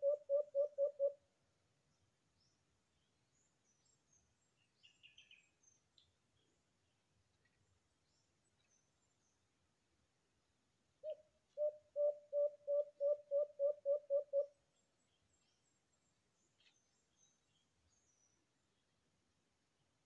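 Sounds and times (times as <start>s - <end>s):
dove cooing: 0.0s - 1.2s, 11.0s - 14.5s
small birds chirping: 1.9s - 9.5s, 11.0s - 19.0s.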